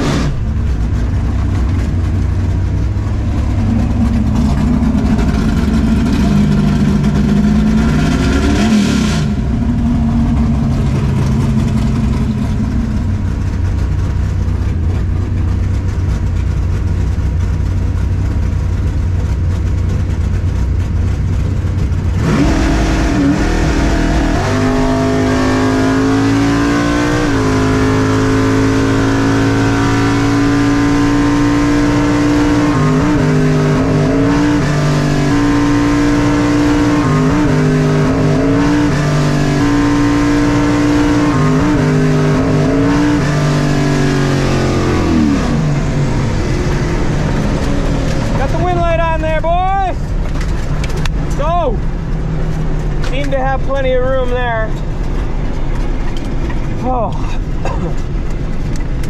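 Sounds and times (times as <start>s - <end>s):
car engine rumbling and revving: 0.0s - 59.0s.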